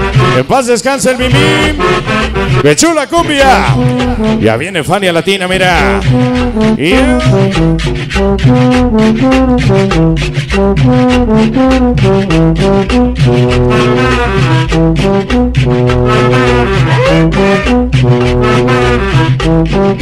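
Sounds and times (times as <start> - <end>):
trombones playing riffs: 0.0 - 4.7, 5.6 - 20.0
salsa music: 0.0 - 20.0.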